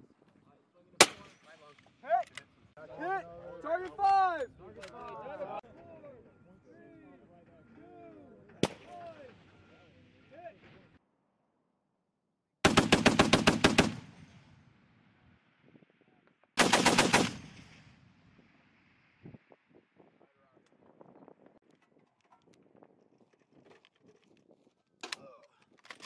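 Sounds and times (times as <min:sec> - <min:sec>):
voices: 0:00.3 - 0:11.0
rifle shot: 0:01.0 - 0:01.4, 0:12.6 - 0:14.6, 0:16.6 - 0:18.2.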